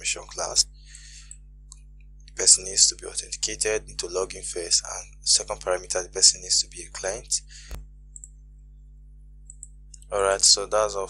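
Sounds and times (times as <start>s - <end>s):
low electrical hum: 0.0s - 11.0s
computer mouse clicks: 9.5s - 10.1s.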